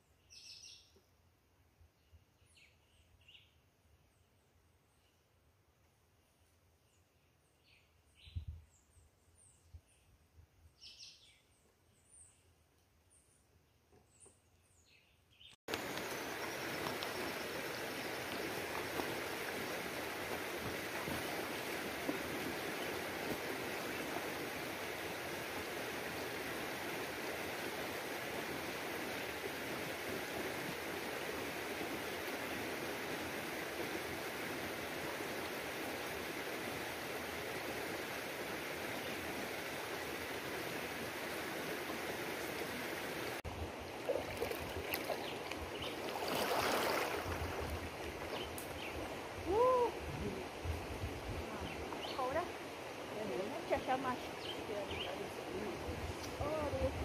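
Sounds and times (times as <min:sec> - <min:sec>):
river water rushing: 0:15.7 - 0:57.0
people splashing while swimming: 0:44.0 - 0:45.3, 0:45.9 - 0:47.7.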